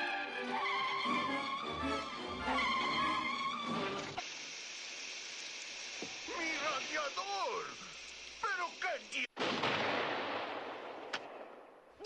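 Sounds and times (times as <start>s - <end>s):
water spraying hiss: 2.8s - 9.3s.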